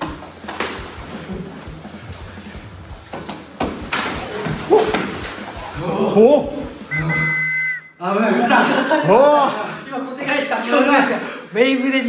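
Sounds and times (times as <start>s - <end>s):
men's voices: 0.8s - 7.3s
whistle blast: 6.9s - 8.0s.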